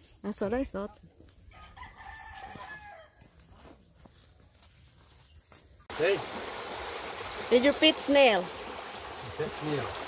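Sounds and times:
rooster crowing: 1.5 - 3.3
stream rushing over rocks: 5.9 - 10.0.

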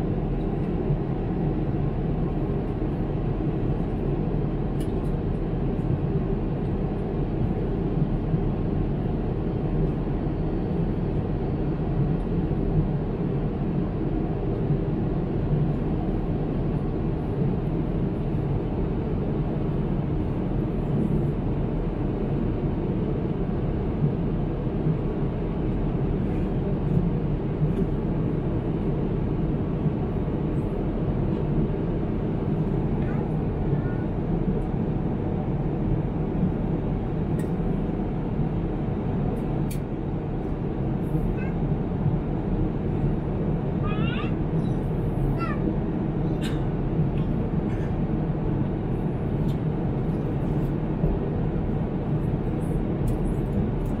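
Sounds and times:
aircraft cabin engine and airflow noise: 0.0 - 54.0.

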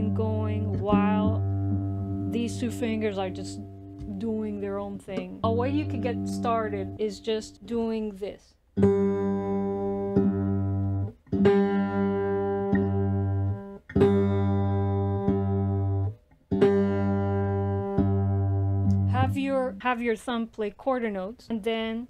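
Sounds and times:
woman speaking: 0.0 - 1.4, 2.3 - 8.6, 19.1 - 22.0
fingerpicked cigar box guitar: 0.0 - 8.0, 8.7 - 19.8.

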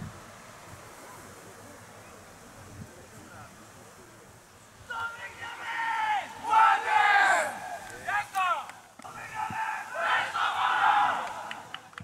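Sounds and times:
team shouting together: 4.9 - 11.7.

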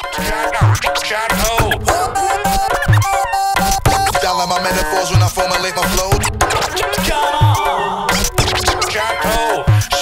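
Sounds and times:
hip hop beat: 0.0 - 10.0
turntable scratching: 0.3 - 10.0.

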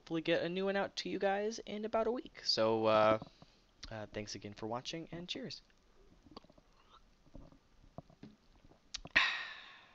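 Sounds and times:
man gulping and swallowing: 6.1 - 9.3.

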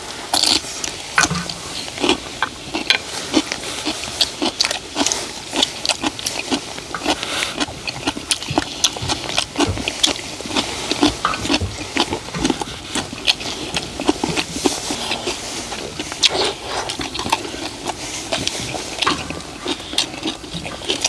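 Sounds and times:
people chewing and slurping: 0.0 - 21.0
wooden spoons scraping a pan: 14.4 - 21.0.

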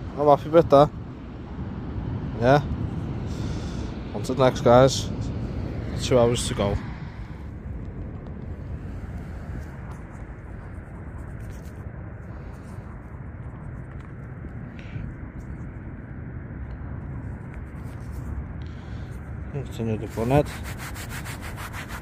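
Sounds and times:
wind buffeting microphone: 0.0 - 22.0
fingers rustling in soil: 9.0 - 14.6.

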